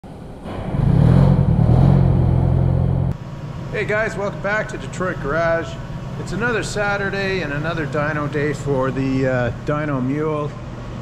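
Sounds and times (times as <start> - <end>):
diesel engine running: 0.4 - 11.0.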